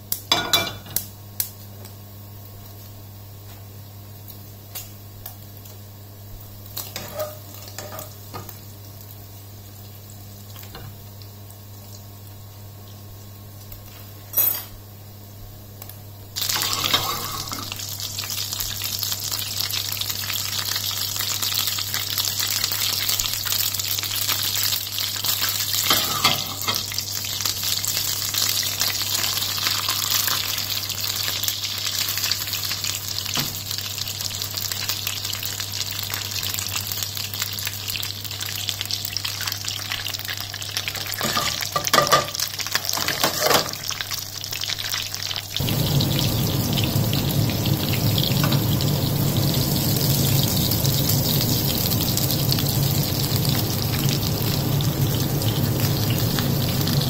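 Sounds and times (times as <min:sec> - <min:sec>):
butter sizzling in a frying pan: 0:00.0 - 0:57.0
fish frying in butter: 0:03.9 - 0:14.2, 0:16.4 - 0:57.0
loud crackles: 0:45.6 - 0:52.3.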